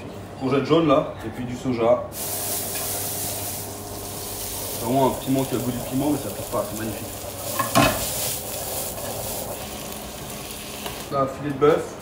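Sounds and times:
noodles sizzling in frying pan: 0:02.2 - 0:11.1.

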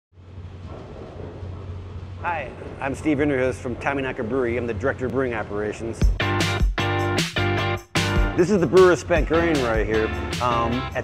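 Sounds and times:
low mechanical hum: 0:00.2 - 0:06.2.

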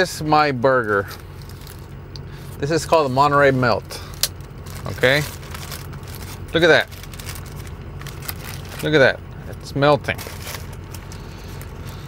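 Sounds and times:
low hum in vehicle cab: 0:00.0 - 0:12.0
paper wrapper crinkling: 0:00.8 - 0:01.9, 0:04.1 - 0:09.2, 0:10.0 - 0:12.0.

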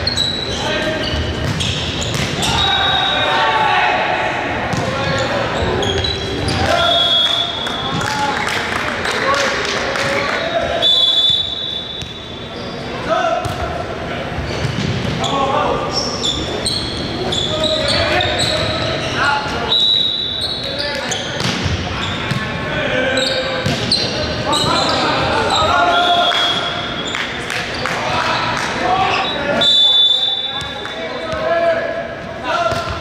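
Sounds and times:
players calling out: 0:15.2 - 0:33.0.

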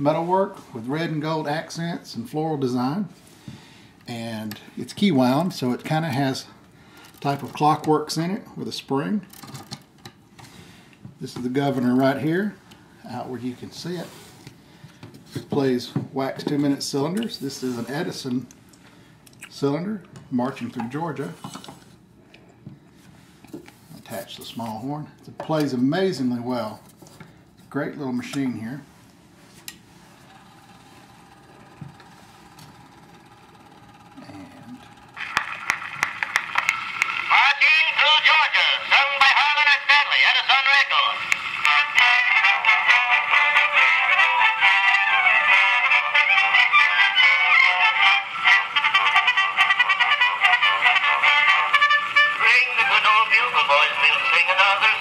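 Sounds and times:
tinny instrumental phonograph music: 0:29.7 - 0:55.0
surface crackle: 0:34.9 - 0:37.3.

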